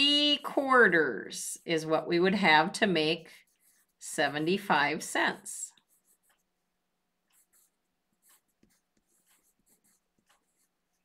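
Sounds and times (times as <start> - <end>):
faint pencil scratching on paper: 0.1 - 11.0.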